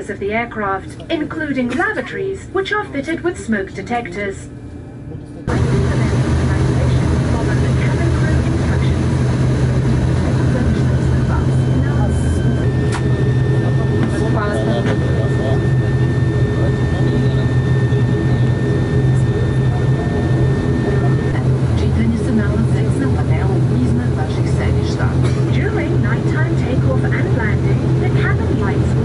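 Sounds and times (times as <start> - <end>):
turboprop engines droning: 0.0 - 29.0.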